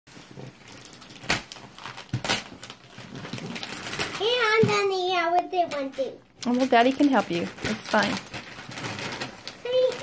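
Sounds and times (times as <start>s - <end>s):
wrapping paper rustling: 0.1s - 10.0s
paper ripping: 0.6s - 4.5s, 6.5s - 10.0s.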